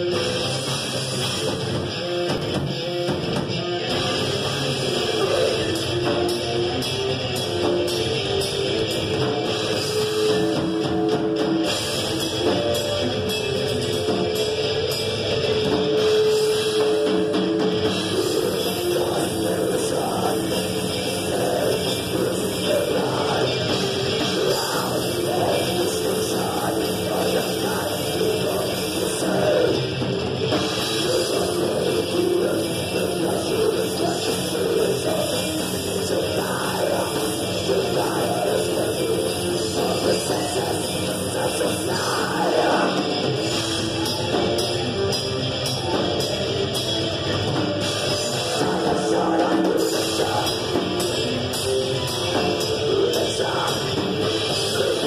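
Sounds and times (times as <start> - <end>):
drum kit steady beat: 0.0 - 55.0
electric guitar long notes: 0.0 - 55.0.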